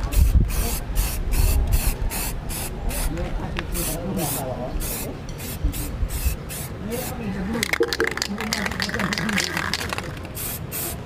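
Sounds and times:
spray can hissing bursts: 0.1 - 3.1, 3.8 - 11.0.

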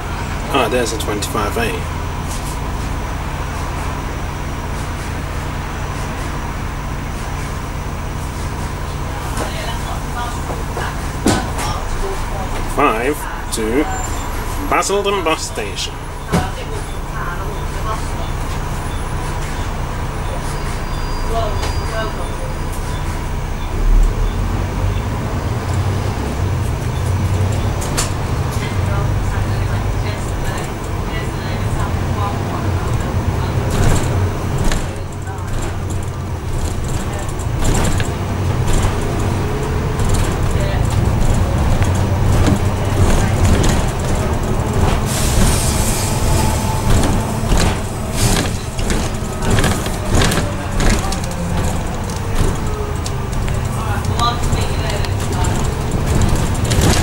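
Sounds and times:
bus engine drone: 0.0 - 57.0
bodywork rattles and knocks: 7.1 - 12.8, 25.0 - 57.0.

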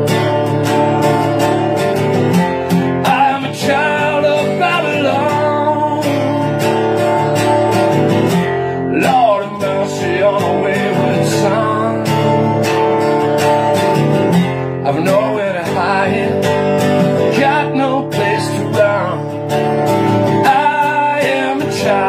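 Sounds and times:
acoustic guitar strumming: 0.0 - 22.0
man singing: 3.0 - 8.0, 8.6 - 12.7, 14.8 - 22.0.

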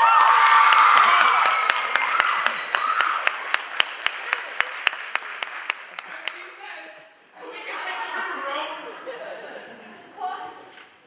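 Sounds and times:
audience whooping: 0.0 - 5.2
audience applauding: 0.0 - 6.6.

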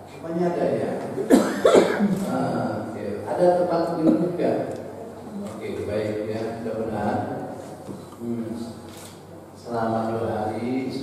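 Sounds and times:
man coughing: 1.3 - 2.1.

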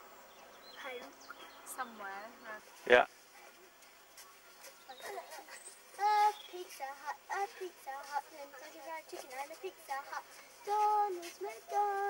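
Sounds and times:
children chattering: 2.9 - 12.0.

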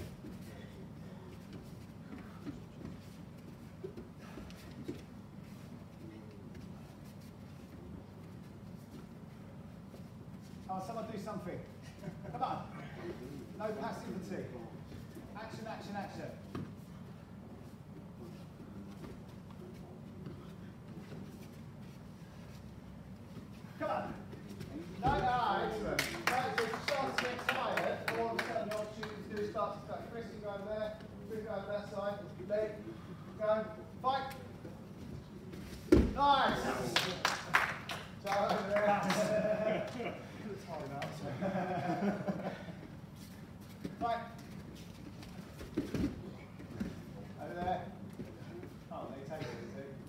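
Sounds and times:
body thumping on foam mats: 35.8 - 36.7.

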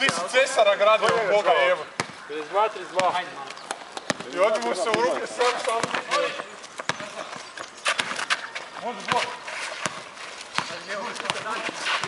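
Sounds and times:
basketball bouncing on asphalt: 0.0 - 12.0
footsteps: 2.0 - 12.0.

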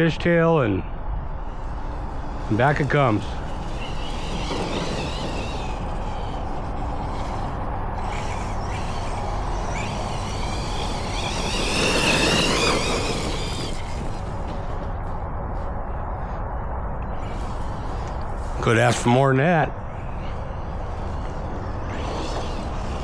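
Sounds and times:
rc truck electric motor whine: 1.4 - 14.8, 20.0 - 23.0.

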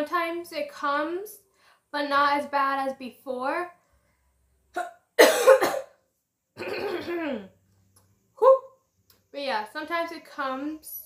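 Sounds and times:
woman clearing her throat: 4.8 - 6.0, 6.6 - 7.6
woman coughing: 4.8 - 6.0, 6.6 - 7.5.

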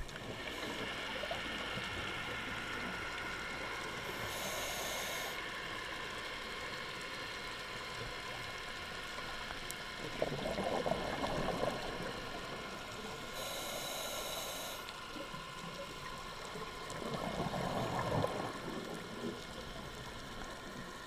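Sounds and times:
regulator inhalation hiss: 4.0 - 5.5, 13.0 - 15.2
exhaled bubbles underwater: 10.0 - 13.6, 15.2 - 21.0.

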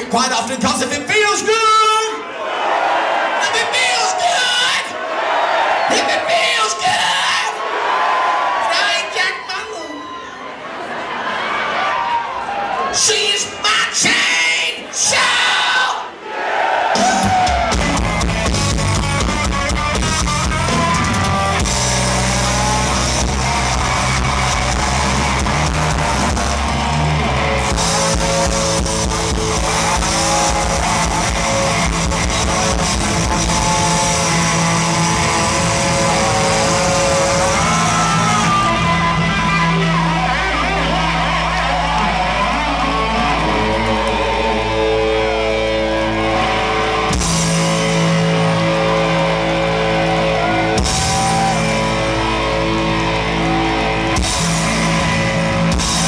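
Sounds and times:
live rock band: 16.9 - 56.0.

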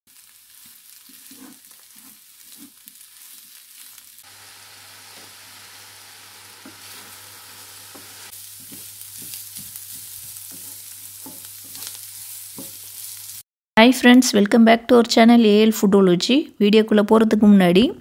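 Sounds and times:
vegetables sizzling in a pan: 0.1 - 13.5
spatula tapping a pan: 7.9 - 11.9, 12.5 - 12.8.

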